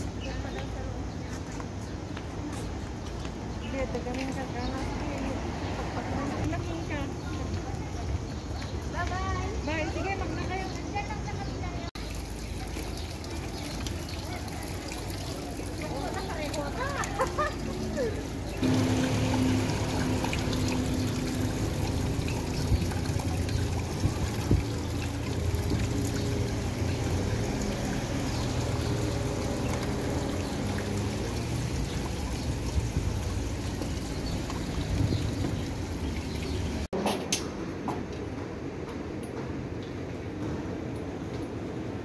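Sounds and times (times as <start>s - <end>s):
water trickling and splashing: 0.0s - 37.0s.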